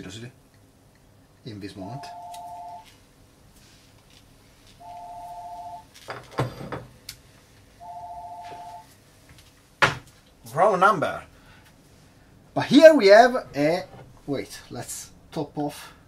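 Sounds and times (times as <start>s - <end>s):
warbling telephone rings: 2.0s - 2.9s, 4.8s - 5.9s, 7.8s - 8.8s.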